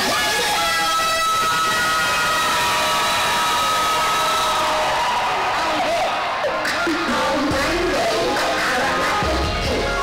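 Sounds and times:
crowd cheering: 0.0s - 9.4s.

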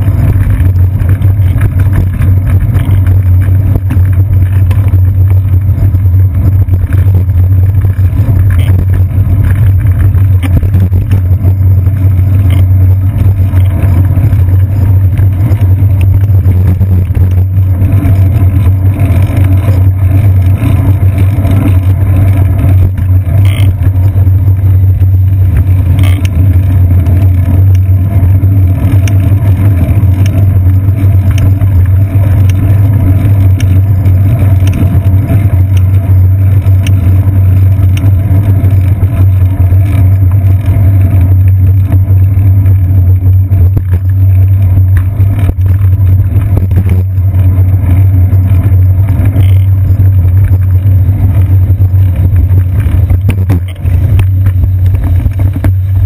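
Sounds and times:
clicks from bumps: 0.0s - 56.0s
wind and road vibration rumble: 0.0s - 56.0s.

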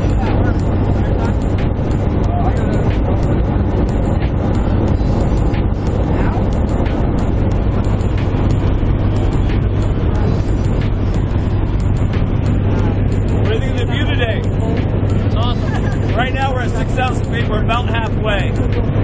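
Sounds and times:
plane engine and propeller droning: 0.0s - 19.0s.

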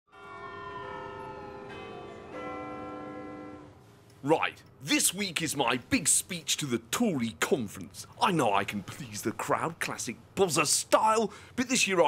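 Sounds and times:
bells ringing: 0.1s - 3.7s.

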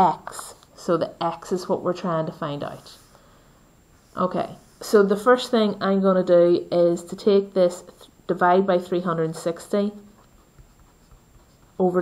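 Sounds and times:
pencil scratching on paper: 9.2s - 12.0s.

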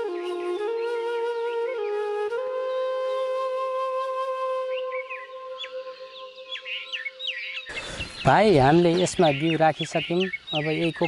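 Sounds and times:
long held flute note: 0.0s - 7.2s
small birds chirping: 4.7s - 11.0s.

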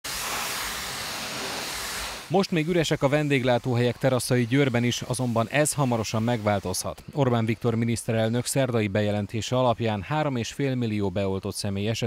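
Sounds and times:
pressure washer jet hissing: 0.0s - 8.3s.

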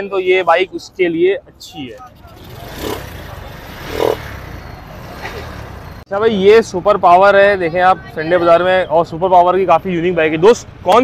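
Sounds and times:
busy outdoor market noise: 0.0s - 11.0s.

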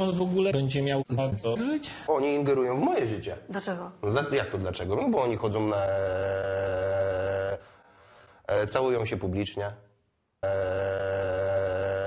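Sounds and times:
man holding a drawn-out vowel: 5.7s - 7.7s, 10.4s - 12.0s.

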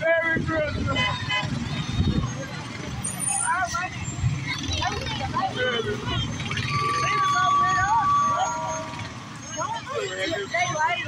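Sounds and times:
people chattering: 0.0s - 11.0s
truck engine rumbling: 0.0s - 11.0s.

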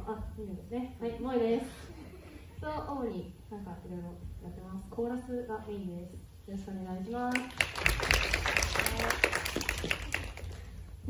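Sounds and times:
small group clapping: 7.3s - 10.8s.

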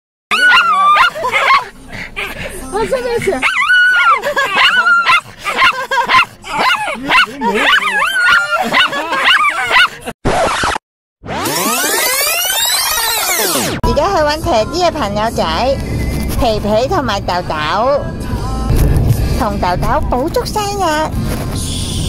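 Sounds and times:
dog whining: 0.3s - 1.7s, 3.4s - 10.8s
people's voices: 0.3s - 10.1s.

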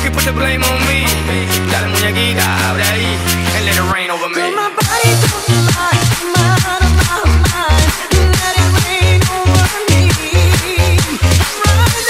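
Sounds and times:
club dance music with bass beat: 0.0s - 12.0s.

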